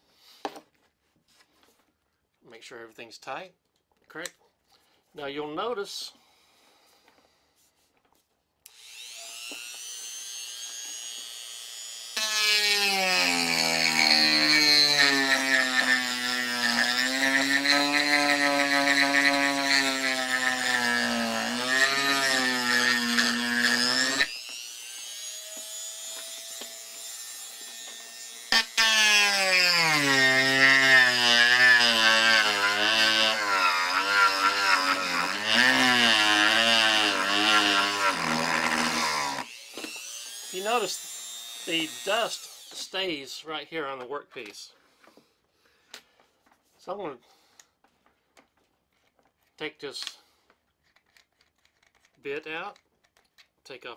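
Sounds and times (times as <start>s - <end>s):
rotary tool carving wood: 8.7s - 43.0s.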